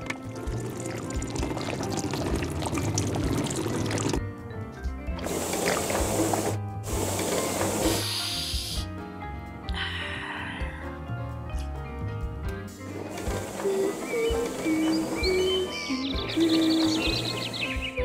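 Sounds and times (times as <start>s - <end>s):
paint pouring into tray: 0.0s - 4.2s
hissing noise bursts: 5.2s - 8.9s.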